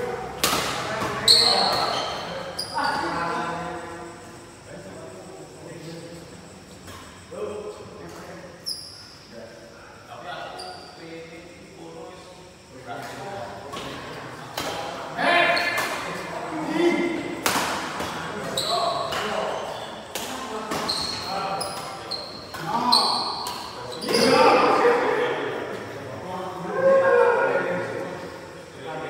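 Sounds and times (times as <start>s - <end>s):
shoes squeaking on court: 0.5s - 3.2s, 8.6s - 9.2s, 18.0s - 24.6s
players' voices and shouts: 14.8s - 17.4s, 18.1s - 29.0s.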